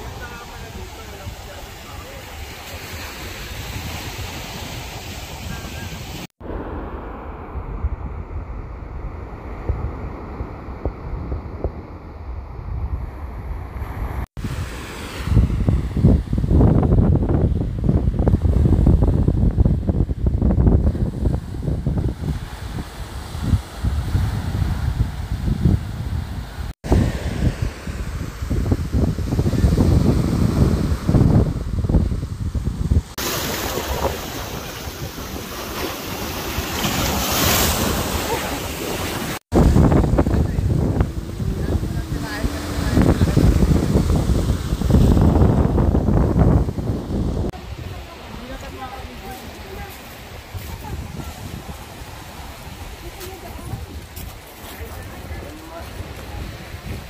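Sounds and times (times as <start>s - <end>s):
waves breaking on sand beach: 0.0s - 19.4s, 20.1s - 57.0s
wind buffeting microphone: 0.0s - 57.0s.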